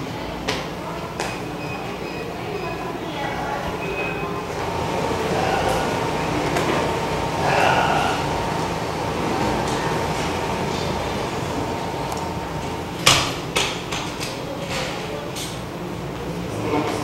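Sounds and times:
room noise: 0:00.0 - 0:17.0.

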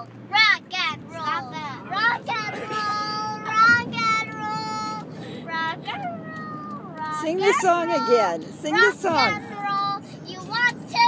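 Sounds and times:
car road noise hum: 0:00.0 - 0:11.0
girl singing: 0:00.0 - 0:11.0.

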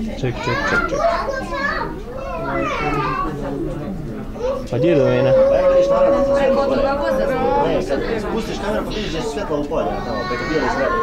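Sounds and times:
people talking: 0:00.0 - 0:11.0
child's voice: 0:00.4 - 0:03.3.

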